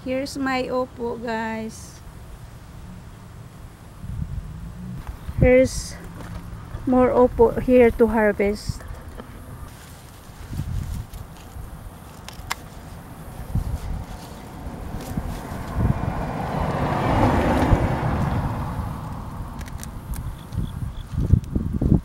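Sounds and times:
broad rush of noise: 0.0 - 20.6
leaves rustling: 1.7 - 22.0
wind rumble on microphone: 2.4 - 22.0.

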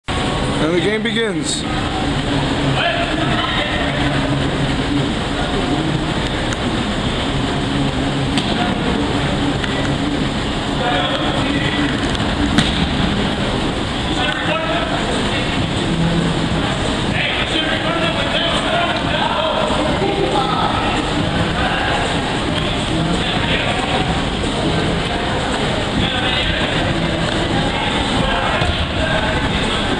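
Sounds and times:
dense background noise: 0.0 - 29.9.

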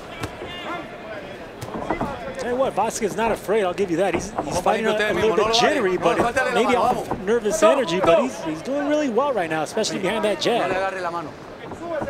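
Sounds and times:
crowd shouting: 0.0 - 3.5, 4.6 - 11.0
arena noise: 0.0 - 12.0.

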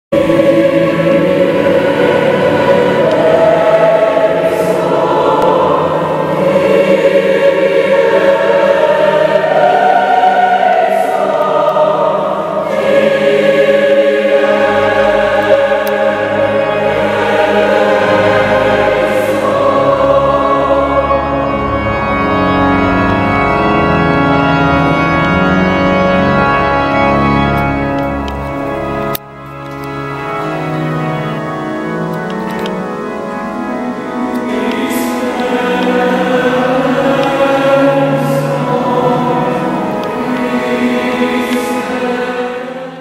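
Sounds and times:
mixed choir singing: 0.1 - 24.0, 33.9 - 43.0
low steady bass notes: 11.2 - 41.3.

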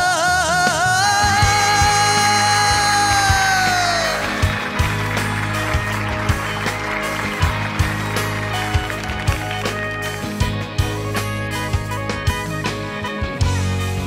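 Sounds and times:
man singing long note: 0.0 - 4.3
band playing instrumental: 0.0 - 14.0
steady drum beat: 0.0 - 14.0.

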